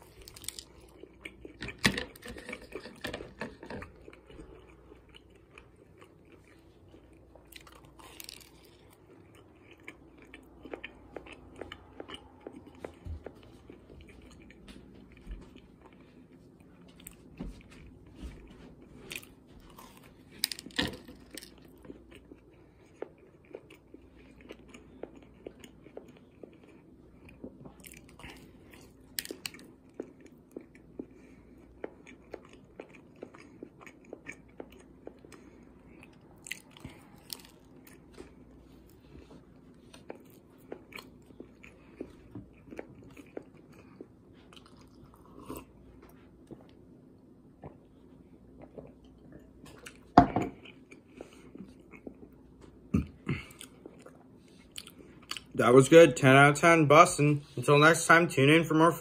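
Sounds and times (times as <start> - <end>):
person chewing: 0.0 - 55.6.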